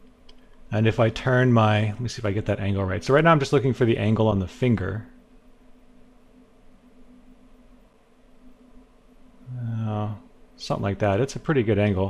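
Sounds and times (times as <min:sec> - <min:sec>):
faint steady hum: 0:00.0 - 0:12.0
man's drawn-out hesitation sound: 0:09.5 - 0:12.0.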